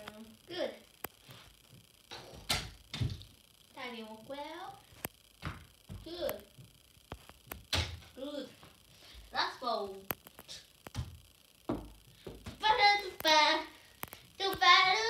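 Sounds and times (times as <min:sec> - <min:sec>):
tennis balls thunking on plastic: 0:10.9 - 0:12.6.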